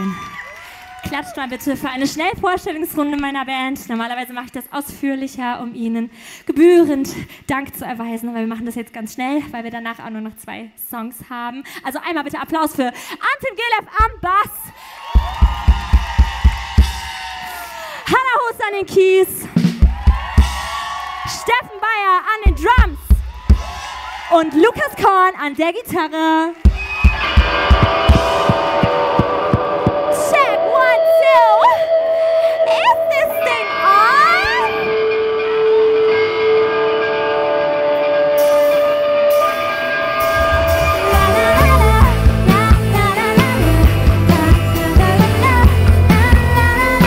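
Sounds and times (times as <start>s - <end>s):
kick drum beats: 15.2s - 17.2s, 19.6s - 20.8s, 22.5s - 23.8s
drums and bass beat: 15.2s - 17.6s, 19.4s - 21.0s, 22.5s - 24.1s, 26.7s - 30.6s, 40.2s - 47.0s
live band playing: 26.6s - 47.0s
long held note sliding down: 26.9s - 37.8s
woman singing: 41.0s - 47.0s.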